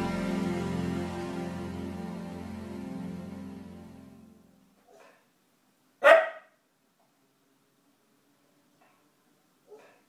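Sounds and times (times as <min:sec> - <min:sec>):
dog barking: 0:04.8 - 0:05.3, 0:06.0 - 0:06.6, 0:08.8 - 0:10.0.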